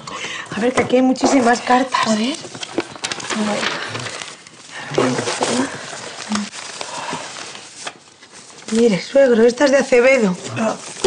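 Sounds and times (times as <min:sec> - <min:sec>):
paper rustling and crackling: 0:01.2 - 0:11.0.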